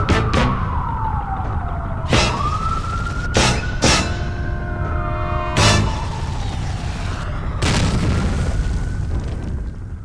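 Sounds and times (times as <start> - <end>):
deep rumbling explosion boom: 7.5 - 10.0.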